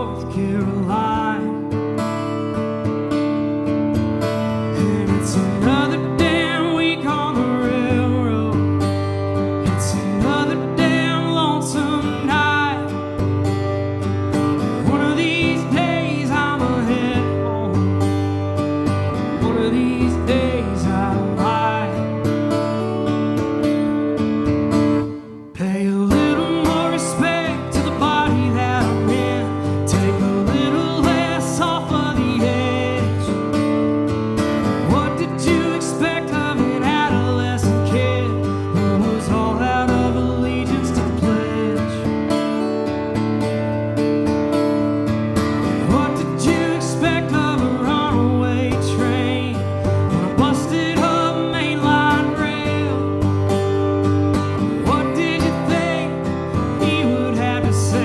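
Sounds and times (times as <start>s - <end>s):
man singing: 0.0s - 2.0s, 4.4s - 13.4s, 14.5s - 18.4s, 19.0s - 22.6s, 25.4s - 33.6s, 34.6s - 42.4s, 45.7s - 58.0s
acoustic guitar strumming: 0.0s - 58.0s.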